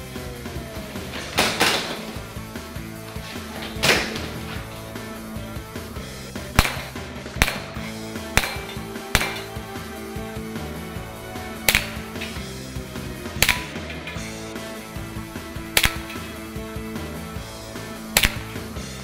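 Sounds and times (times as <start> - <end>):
background music: 0.0 - 19.0
sharp gunshots: 0.7 - 18.8.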